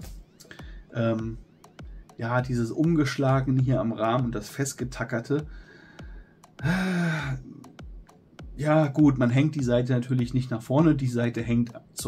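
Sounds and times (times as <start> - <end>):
man sighing: 6.6 - 7.6.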